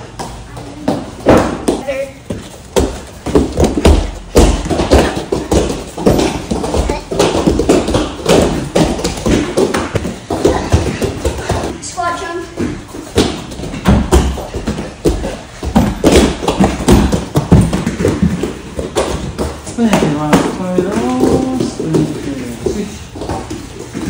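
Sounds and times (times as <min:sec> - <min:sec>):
bare feet thudding on foam mats: 0:00.0 - 0:24.0.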